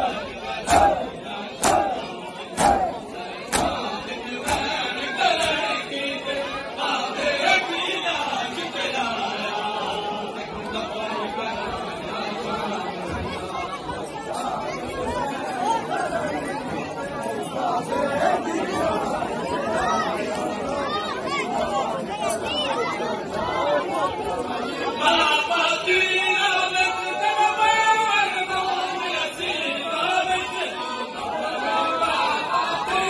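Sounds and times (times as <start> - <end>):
crowd of men talking: 0.0 - 33.0
louder group of voices: 0.0 - 33.0.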